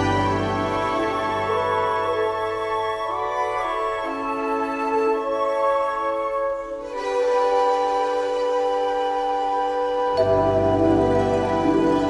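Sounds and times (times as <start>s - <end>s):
strings holding sustained chords: 0.0s - 12.0s.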